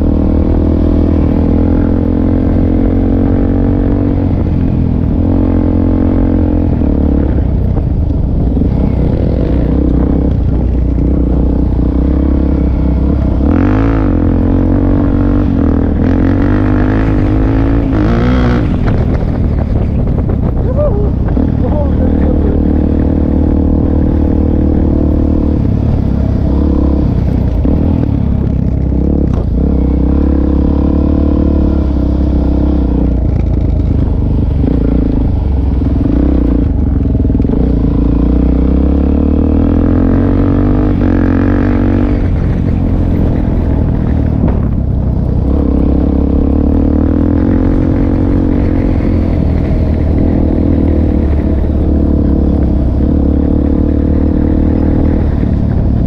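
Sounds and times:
motorcycle engine running: 0.0 - 56.0.

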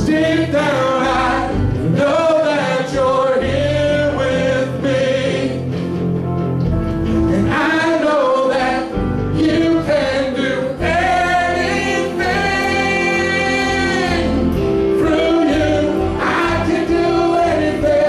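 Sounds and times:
group singing gospel song: 0.0 - 5.9, 7.2 - 18.0
instrumental accompaniment: 0.0 - 18.0.

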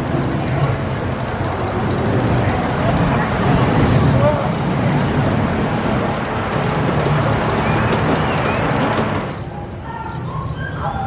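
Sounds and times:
roller coaster rumble: 0.0 - 11.0.

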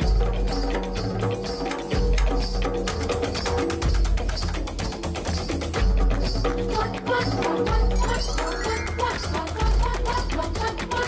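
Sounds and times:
percussion band music: 0.0 - 11.0.

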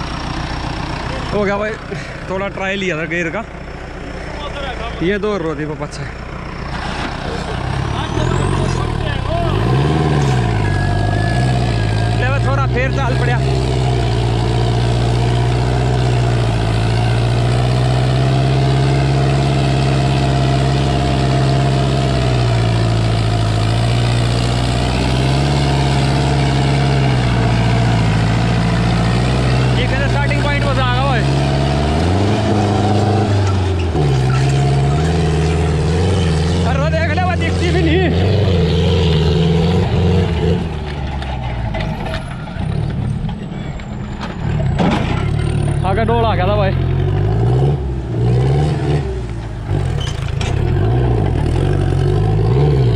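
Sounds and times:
tractor diesel engine under load: 0.0 - 52.9.

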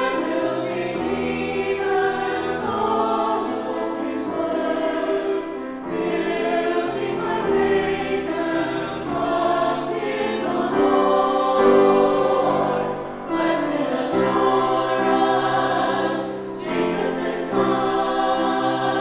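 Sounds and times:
grand piano accompaniment: 0.0 - 19.0
mixed choir singing: 0.0 - 19.0.

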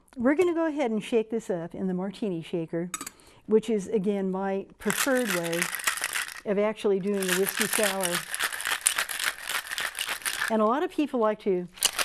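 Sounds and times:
ice rattling in cocktail shaker: 4.8 - 10.6, 11.8 - 12.0.

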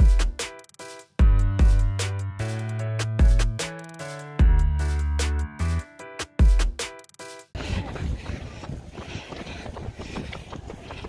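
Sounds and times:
footfalls on asphalt: 7.6 - 11.0
wind buffeting microphone: 7.6 - 11.0.

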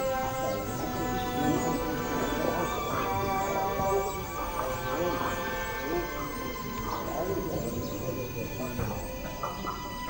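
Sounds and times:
background music with held notes: 0.0 - 10.0
horses' hooves clip-clopping: 0.0 - 10.0
indistinct crowd voices: 0.0 - 10.0.

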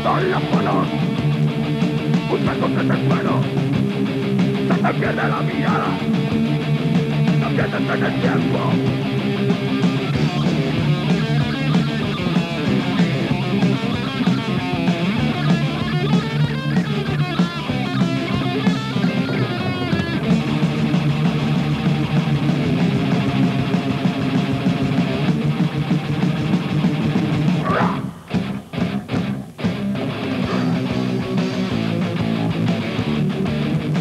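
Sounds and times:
heavy metal band playing live: 0.0 - 34.0
wavering guitar line: 0.0 - 34.0.

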